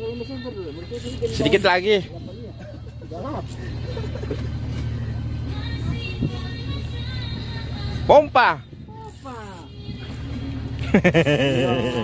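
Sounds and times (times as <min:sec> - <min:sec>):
boat engine drone: 0:00.0 - 0:12.0.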